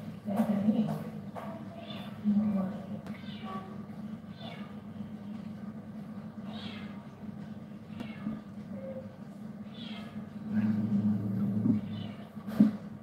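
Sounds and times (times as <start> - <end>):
steady low hum: 0.0 - 13.0
cat meowing: 3.1 - 4.9, 6.4 - 7.2, 7.9 - 10.7, 11.5 - 12.4.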